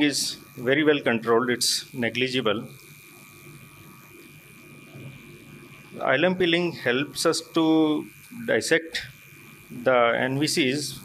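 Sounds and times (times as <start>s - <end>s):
low buzzing hum: 0.0s - 11.0s.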